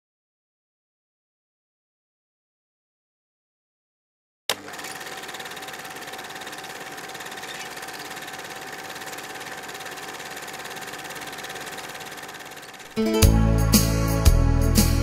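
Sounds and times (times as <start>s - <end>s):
film projector whirring and clattering: 4.5s - 13.0s.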